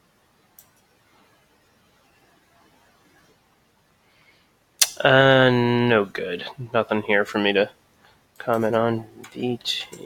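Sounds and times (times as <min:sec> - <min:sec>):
sharp click: 0:04.8 - 0:05.0
person speaking: 0:04.8 - 0:07.7, 0:08.4 - 0:10.0.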